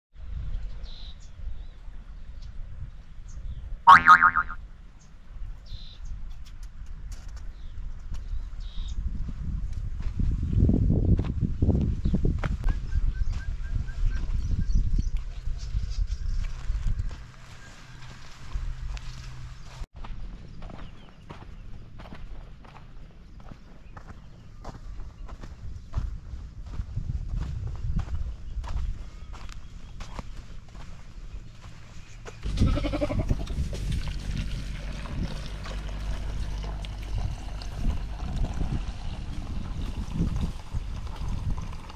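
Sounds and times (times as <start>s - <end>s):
cartoon boing: 3.9s - 4.6s
footsteps crunching on dry earth: 8.0s - 41.3s
low background rumble: 32.4s - 40.7s.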